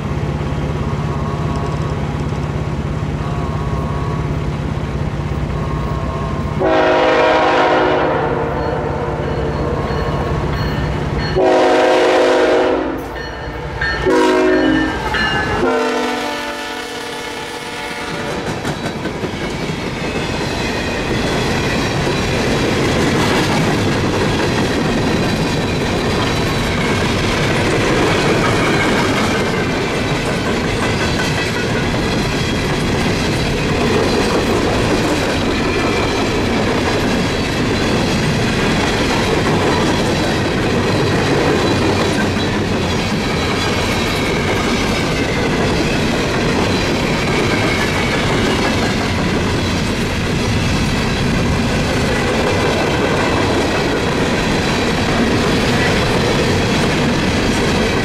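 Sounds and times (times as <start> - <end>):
clickety-clack over rail joints: 0.0 - 58.0
train wheels rumbling on rails: 0.0 - 58.0.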